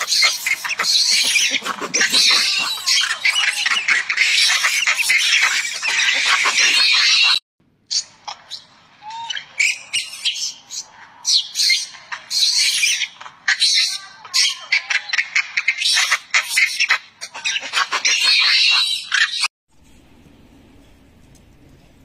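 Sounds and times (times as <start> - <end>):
monkey screaming: 0.0 - 19.5.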